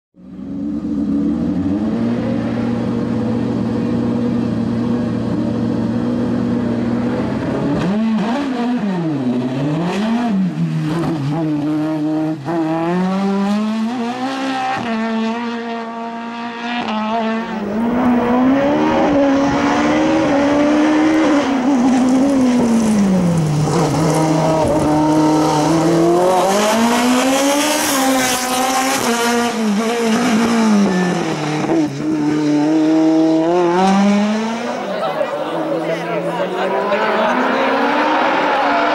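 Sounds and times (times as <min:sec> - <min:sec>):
race car engine revving: 0:00.3 - 0:38.9.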